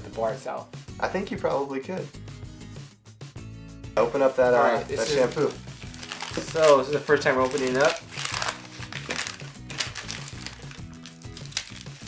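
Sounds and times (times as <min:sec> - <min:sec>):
background music: 0:00.0 - 0:12.0
paper wrapping crinkling: 0:04.9 - 0:12.0.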